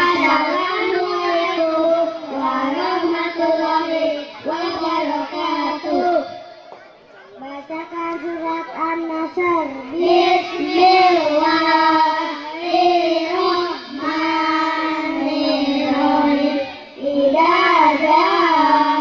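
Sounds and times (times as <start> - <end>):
boys singing in unison: 0.0 - 6.6, 7.4 - 19.0.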